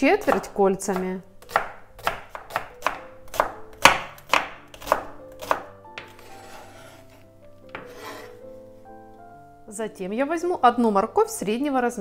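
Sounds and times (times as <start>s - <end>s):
quiet background music: 0.0s - 12.0s
knife slicing onion on board: 0.2s - 8.4s
knife blade scraping board: 6.0s - 8.4s.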